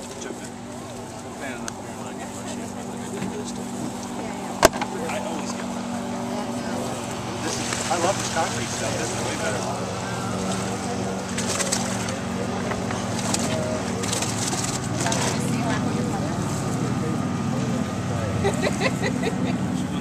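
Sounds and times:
outboard boat engine idling: 0.0 - 20.0.

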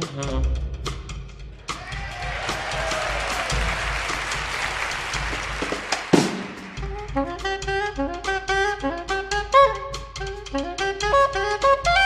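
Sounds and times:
jazz big band playing: 0.0 - 12.0
saxophone line: 2.8 - 12.0.

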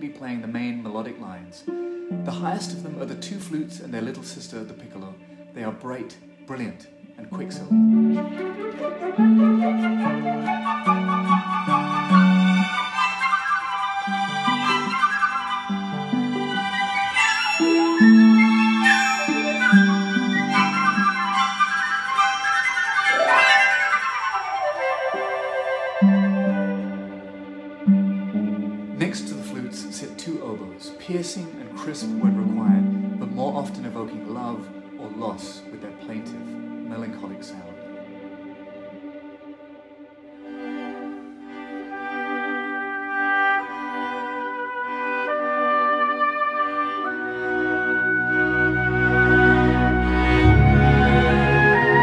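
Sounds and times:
harp: 0.0 - 52.0
orchestral strings bowed chords: 0.0 - 52.0
violins: 0.0 - 52.0
flutes and piccolo playing runs: 8.0 - 27.2.

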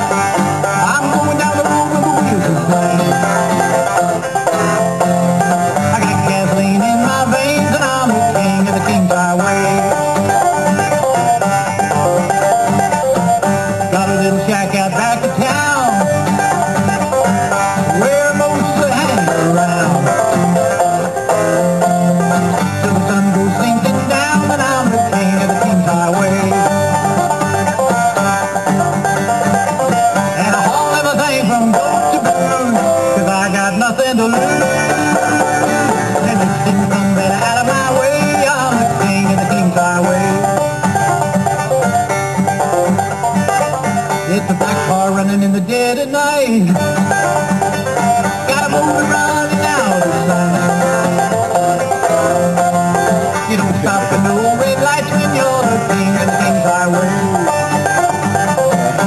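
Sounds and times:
banjo and guitar playing: 0.0 - 59.0.

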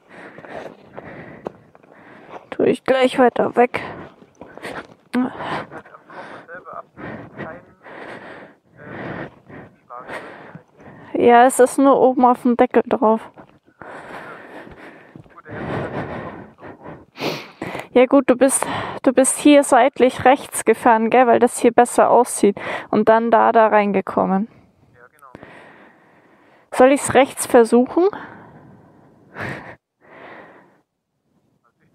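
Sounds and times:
person breathing heavily: 0.0 - 11.4, 13.2 - 19.1, 22.5 - 23.0, 24.5 - 26.7, 28.1 - 30.9
faint background noise: 0.0 - 31.9
man speaking: 5.7 - 8.0, 9.8 - 10.8, 15.3 - 16.1.

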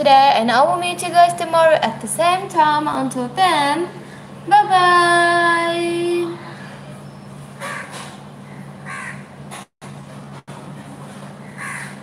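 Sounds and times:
steady low hum: 0.0 - 12.0
bird calling: 6.4 - 9.4, 11.4 - 12.0.

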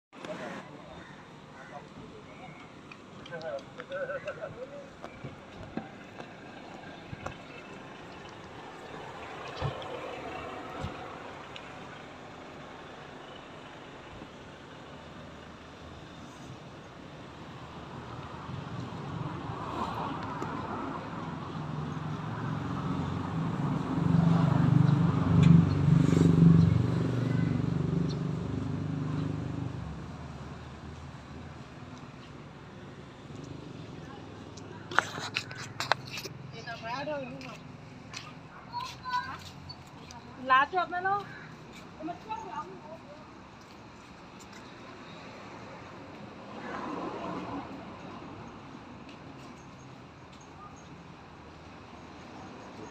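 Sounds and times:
vehicle passing on street: 3.4 - 52.9.

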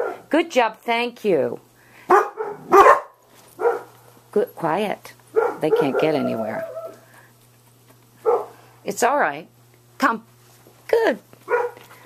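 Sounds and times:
dog barking: 0.0 - 0.3, 2.1 - 4.0, 5.3 - 7.0, 8.2 - 8.6, 11.5 - 11.8.

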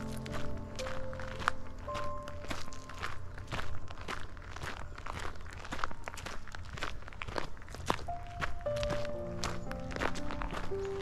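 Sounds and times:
footsteps on gravel: 0.0 - 11.0
soft background music: 0.0 - 11.0.

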